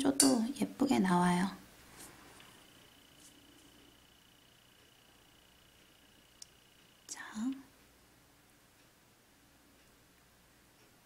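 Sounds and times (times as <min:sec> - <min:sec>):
woman breathy whisper and hum: 0:07.1 - 0:07.7.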